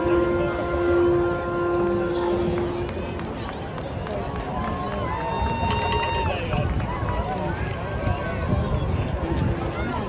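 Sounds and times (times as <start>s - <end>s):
crowd chatter: 0.0s - 10.0s.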